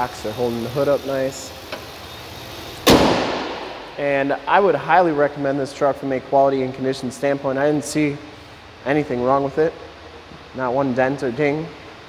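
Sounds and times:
car hood slammed shut: 2.8s - 4.0s.

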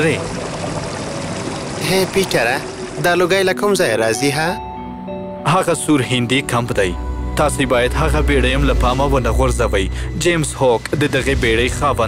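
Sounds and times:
waterfall pouring: 0.0s - 4.1s.

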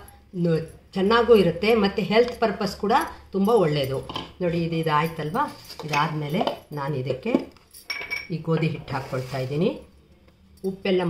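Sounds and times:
metallic clink of kitchen utensil: 7.8s - 8.4s.

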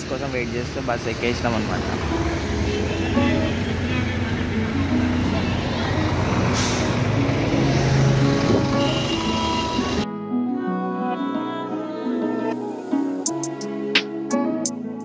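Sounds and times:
vehicle engines running: 0.0s - 10.0s
background music: 1.2s - 15.0s
pitched tones: 2.0s - 10.0s.

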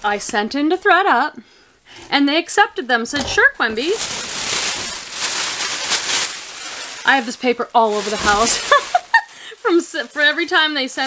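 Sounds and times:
packing paper crinkling: 3.4s - 11.0s.

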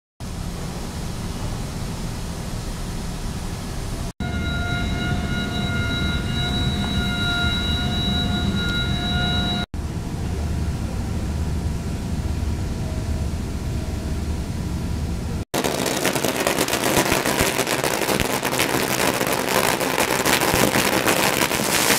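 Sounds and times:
low machinery rumble: 0.2s - 15.4s
high multi-tone whine: 4.2s - 21.9s.

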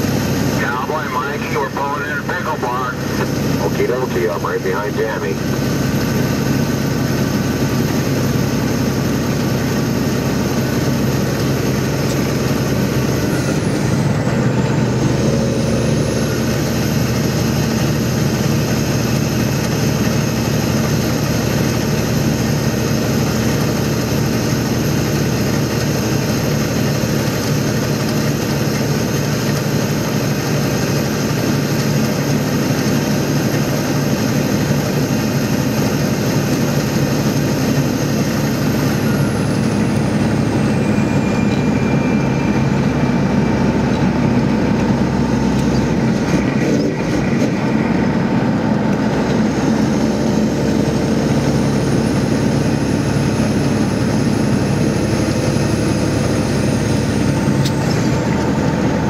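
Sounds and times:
road noise: 0.0s - 59.0s
truck engine drone: 0.0s - 59.0s.

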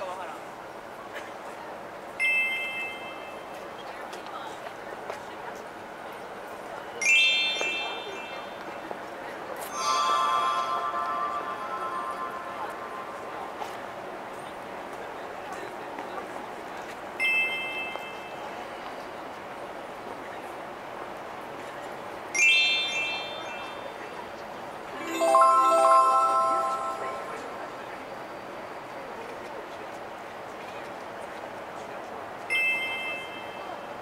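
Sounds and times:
background murmur: 0.0s - 34.0s
electronic chimes over loudspeaker: 7.0s - 8.7s, 9.6s - 13.9s, 25.0s - 27.8s.

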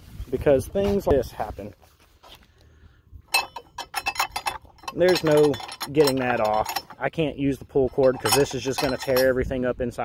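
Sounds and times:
sharp metallic clicks: 3.3s - 9.5s.

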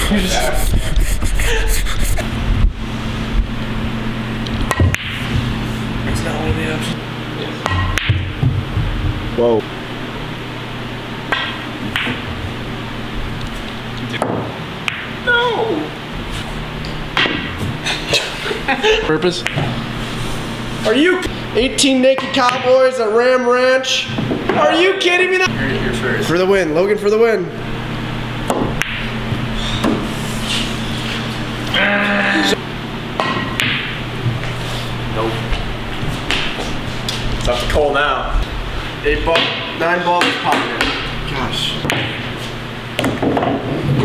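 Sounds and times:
person crying out: 0.0s - 2.2s, 15.2s - 16.0s, 31.7s - 32.6s
low hum: 0.0s - 22.2s
pool balls clicking: 4.5s - 5.4s, 11.3s - 12.5s, 28.4s - 29.2s
cue striking cue ball: 4.6s - 5.5s, 7.6s - 8.4s, 11.3s - 12.3s, 14.2s - 15.2s, 17.1s - 17.6s, 28.4s - 30.1s, 33.2s - 34.5s.

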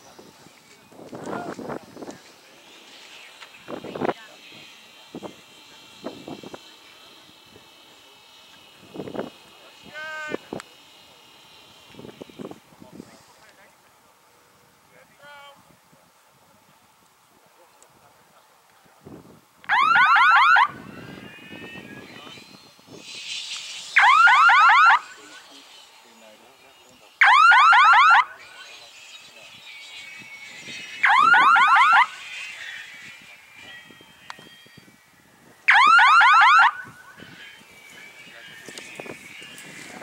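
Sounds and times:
warbling electronic siren tone: 19.7s - 20.8s, 24.0s - 25.2s, 27.2s - 28.7s, 30.0s - 32.2s, 35.7s - 37.2s.

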